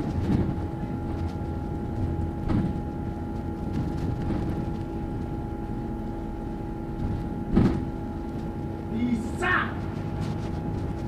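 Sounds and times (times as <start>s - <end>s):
bus engine and road rumble: 0.0s - 11.0s
constant hum: 0.0s - 11.0s
loud thump: 2.4s - 2.8s, 7.0s - 7.9s.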